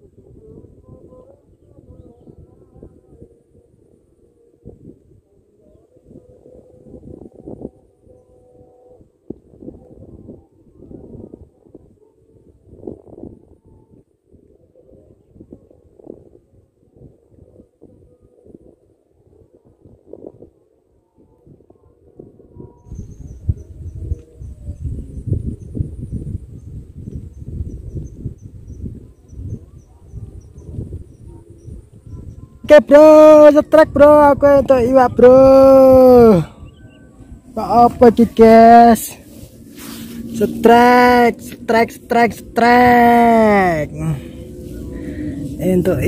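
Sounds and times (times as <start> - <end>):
wind buffeting microphone: 0.0 - 46.0.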